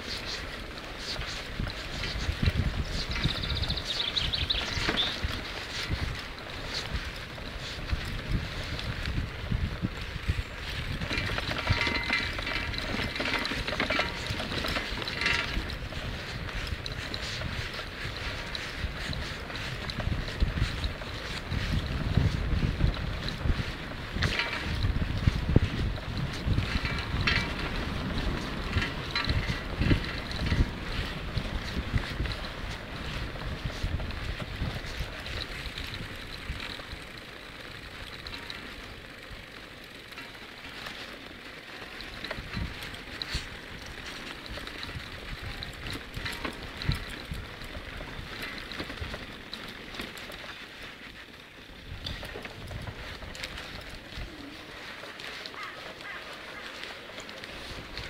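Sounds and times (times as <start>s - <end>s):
wind buffeting microphone: 0.0s - 40.2s, 41.0s - 50.5s, 51.6s - 58.0s.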